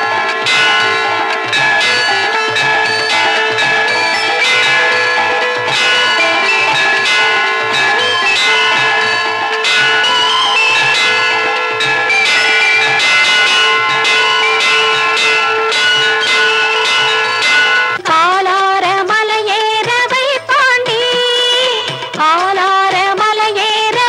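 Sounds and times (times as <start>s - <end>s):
sustained held tones: 0.0s - 18.0s
bells struck repeatedly: 0.0s - 18.1s.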